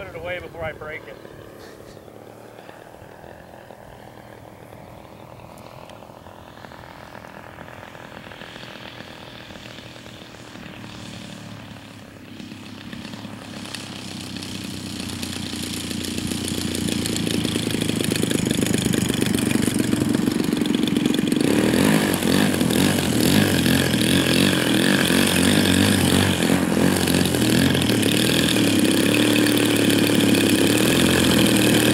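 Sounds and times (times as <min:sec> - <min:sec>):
model plane engine running: 0:00.0 - 0:31.9.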